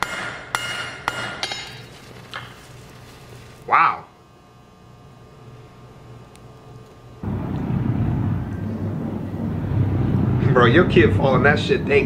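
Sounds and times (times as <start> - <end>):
low faint hum: 0.3 - 12.0.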